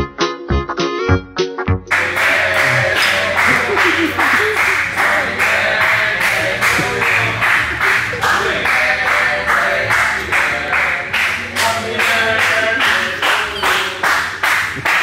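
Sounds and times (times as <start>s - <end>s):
people singing birthday song: 1.9s - 14.2s
rhythmic clapping: 1.9s - 15.0s.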